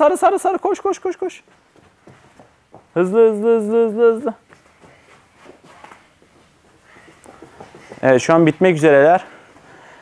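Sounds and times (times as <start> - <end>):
children's footsteps on carpet: 0.8 - 10.0.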